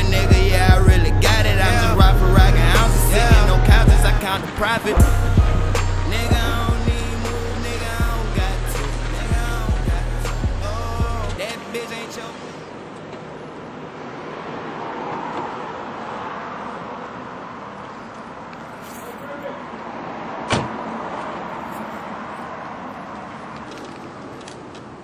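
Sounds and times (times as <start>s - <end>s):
car engine: 0.0s - 17.8s
road noise: 0.0s - 25.0s
car door shutting: 2.5s - 10.4s, 20.4s - 20.8s.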